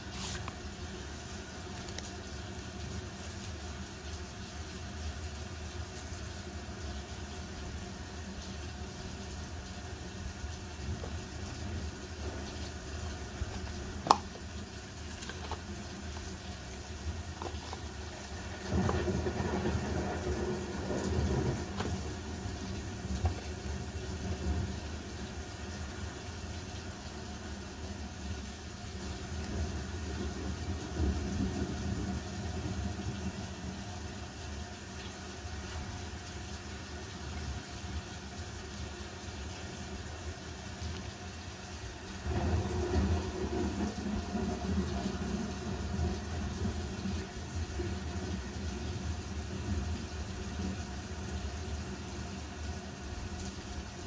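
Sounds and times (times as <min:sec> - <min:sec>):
low steady rumble: 0:00.0 - 0:34.6.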